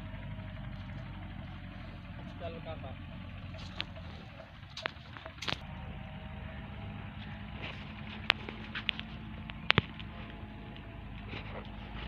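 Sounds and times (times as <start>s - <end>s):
steady low engine hum: 0.0s - 12.0s.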